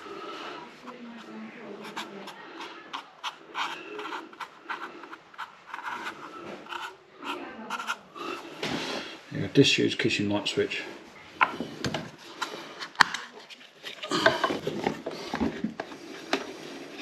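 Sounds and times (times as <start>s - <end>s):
marker pen scratching on plastic: 0.8s - 8.6s.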